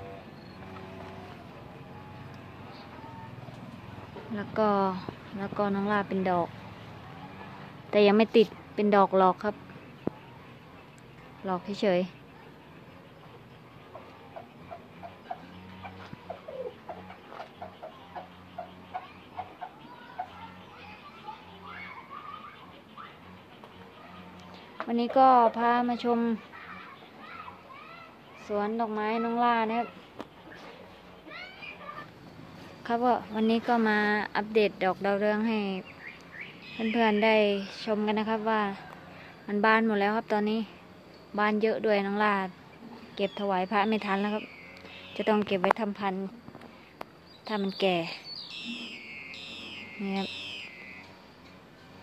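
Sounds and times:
faint distant voices: 0:00.0 - 0:52.0
bird whistled call: 0:35.8 - 0:37.8, 0:43.2 - 0:45.3, 0:47.4 - 0:51.2.

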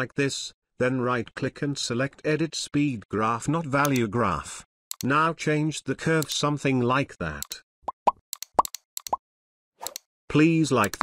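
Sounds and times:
sharp clicks: 0:03.8 - 0:04.1, 0:04.9 - 0:05.2, 0:06.2 - 0:06.4, 0:08.3 - 0:09.2, 0:09.8 - 0:10.1, 0:10.8 - 0:11.0.

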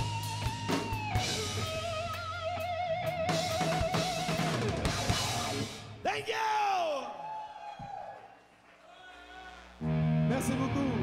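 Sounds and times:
man yelling into a microphone: 0:06.0 - 0:07.4.

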